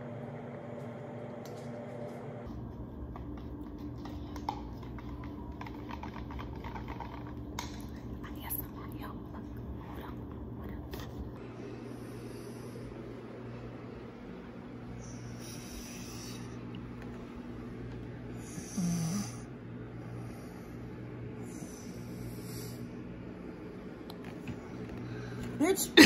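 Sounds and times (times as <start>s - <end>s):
faint low hum: 0.0s - 26.0s
woman snoring: 18.3s - 19.5s.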